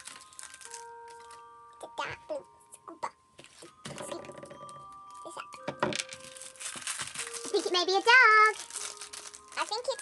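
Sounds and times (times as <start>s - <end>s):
plastic wrapper crinkling and tearing: 0.0s - 1.5s, 5.0s - 10.0s.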